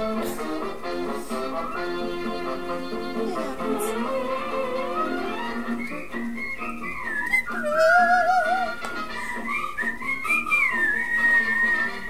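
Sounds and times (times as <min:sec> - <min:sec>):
background music: 0:00.0 - 0:12.0
person whistling a tune: 0:01.5 - 0:02.0, 0:03.3 - 0:12.0.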